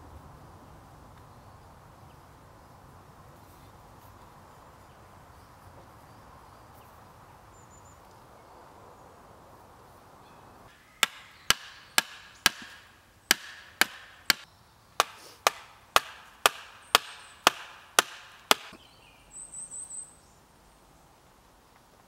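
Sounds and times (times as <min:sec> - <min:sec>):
wooden stake being struck: 0:10.7 - 0:18.8.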